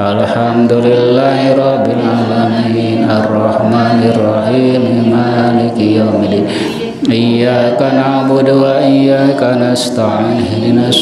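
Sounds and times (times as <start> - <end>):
man chanting a prayer: 0.0 - 11.0.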